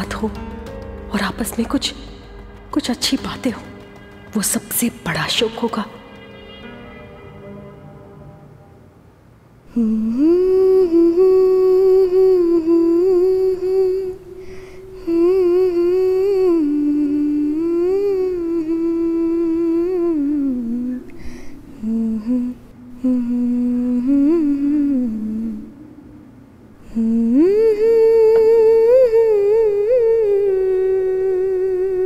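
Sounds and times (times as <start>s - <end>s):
woman humming: 9.7s - 14.3s, 21.8s - 32.0s.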